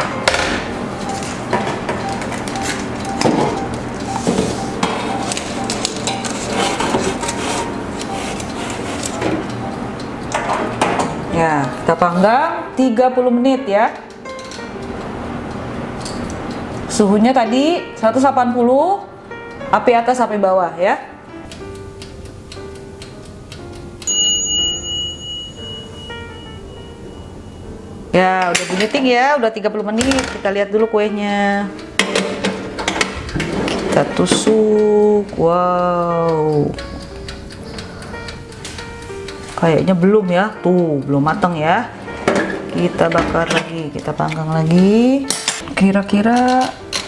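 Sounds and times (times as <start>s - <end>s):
oven timer ticking: 0.0s - 47.0s
soft background music: 0.0s - 47.0s
timer bell ding: 1.0s - 6.4s, 24.0s - 28.3s
metal pan knocking and clattering: 32.0s - 33.1s
oven glass door shutting: 32.0s - 34.5s.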